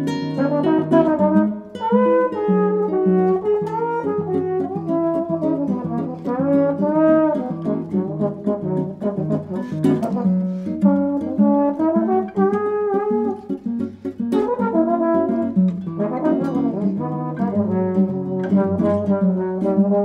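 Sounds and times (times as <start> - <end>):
guitar chords: 0.0 - 20.0
trombone solo: 0.3 - 13.6, 14.4 - 20.0.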